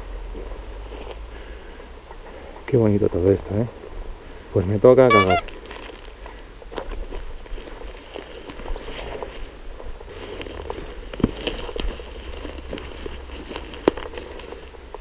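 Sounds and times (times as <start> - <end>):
fronds rustling: 5.2 - 15.0
footsteps through undergrowth: 5.3 - 15.0
dry twigs crackling underfoot: 5.4 - 15.0.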